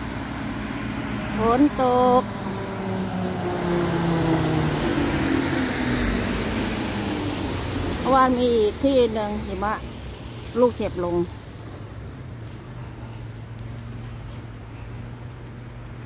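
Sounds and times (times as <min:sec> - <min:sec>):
vehicle passing: 0:00.0 - 0:16.0.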